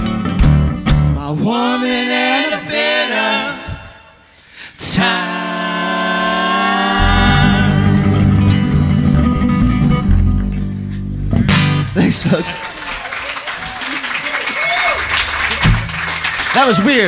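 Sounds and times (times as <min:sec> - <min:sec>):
upright bass: 0:00.0 - 0:01.5, 0:06.3 - 0:12.6, 0:15.0 - 0:17.0
sung harmony: 0:00.0 - 0:17.0
guitars fiddle and mandolin: 0:06.6 - 0:12.6
final guitar strum: 0:07.0 - 0:10.7.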